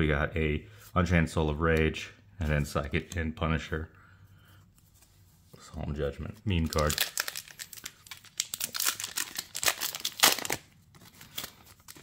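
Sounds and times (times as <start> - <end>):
foil wrapper crinkling: 6.6 - 12.0.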